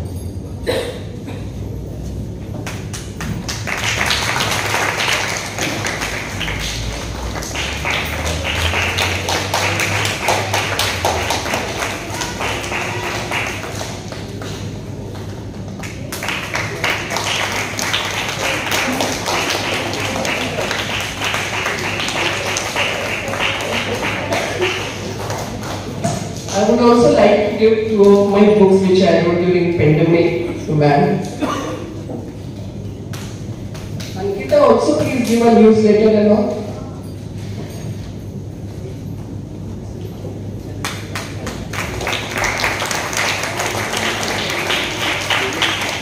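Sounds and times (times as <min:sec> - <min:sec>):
audience applauding: 0:02.6 - 0:26.6, 0:40.7 - 0:46.0.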